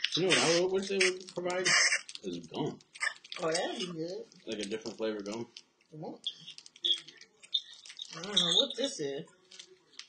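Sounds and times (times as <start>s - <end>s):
plastic wrapper crinkling: 0.0s - 10.0s
person saying mm-hmm: 0.2s - 1.2s.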